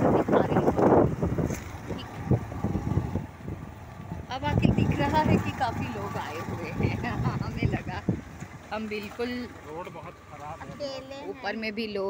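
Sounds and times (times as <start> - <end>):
wind rushing on microphone: 0.0 - 8.6
motorcycle engine and road rumble: 0.0 - 12.0.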